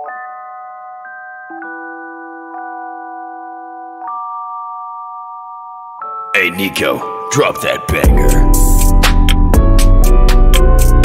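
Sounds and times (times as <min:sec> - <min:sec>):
soft bell-like keyboard chords: 0:00.0 - 0:11.0.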